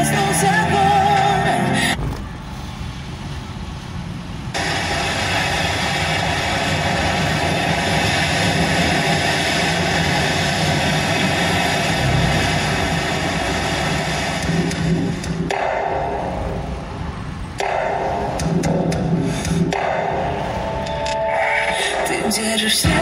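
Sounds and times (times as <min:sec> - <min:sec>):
car engine rumbling: 0:00.0 - 0:23.0
steady rushing hiss: 0:02.0 - 0:23.0.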